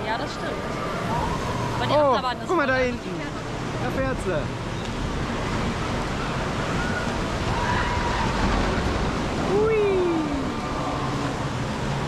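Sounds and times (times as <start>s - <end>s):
water rushing through rapids: 0.0s - 12.0s.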